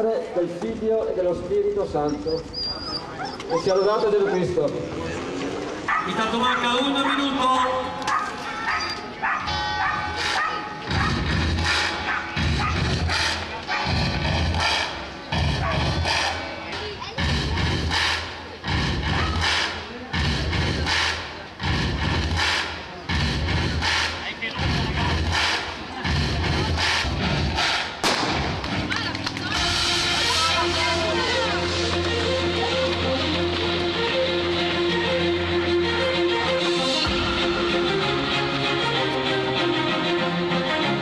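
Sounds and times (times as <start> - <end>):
crowd chatter: 0.0 - 41.0
dog barking: 5.9 - 7.4, 8.1 - 11.2, 12.0 - 13.9, 15.6 - 15.9
music: 9.4 - 41.0
starting gun bang: 28.0 - 28.8.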